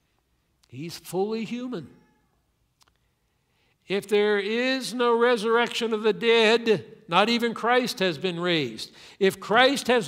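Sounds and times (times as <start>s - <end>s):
man speaking: 0.6s - 2.0s, 3.9s - 10.0s.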